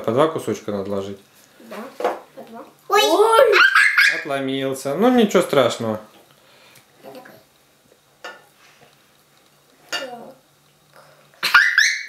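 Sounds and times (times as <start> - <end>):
girl's high-pitched laughing squeal: 3.4 - 4.2, 11.4 - 12.0.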